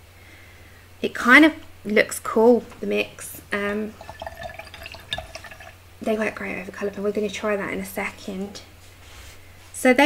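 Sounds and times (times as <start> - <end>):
water dripping and splashing: 3.9 - 5.8.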